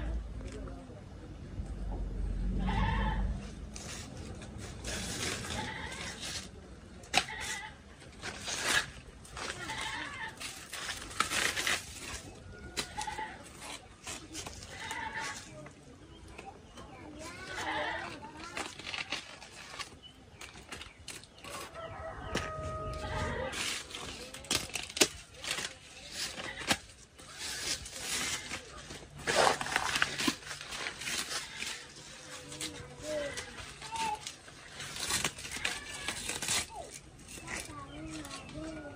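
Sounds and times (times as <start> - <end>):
rustling of fibrous leaves: 2.2 - 38.9
knife cutting and scraping stems: 3.4 - 38.9
chickens calling: 21.0 - 24.0.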